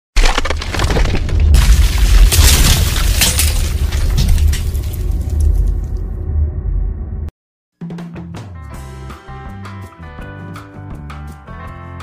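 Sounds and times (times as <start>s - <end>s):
crumbling rock debris crackling: 0.2s - 6.2s
deep booming rumble: 1.3s - 7.3s.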